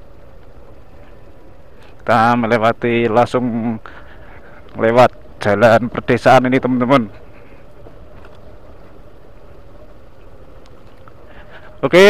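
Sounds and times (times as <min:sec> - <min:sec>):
faint steady whine: 0:00.0 - 0:12.0
motorcycle engine rumble: 0:00.0 - 0:12.0.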